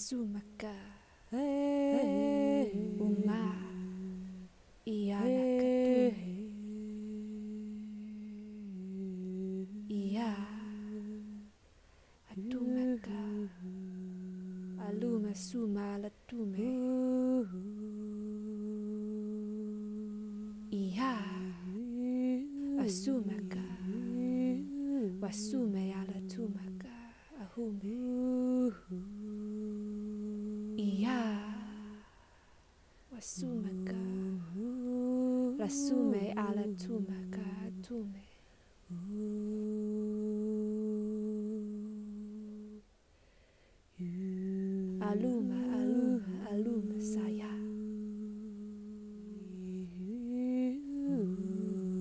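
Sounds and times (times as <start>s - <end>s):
woman humming low note: 1.6s - 4.4s.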